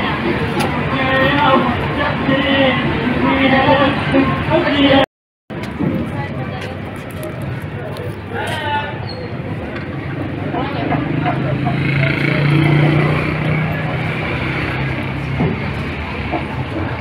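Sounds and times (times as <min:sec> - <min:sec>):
people's voices: 0:00.0 - 0:17.0.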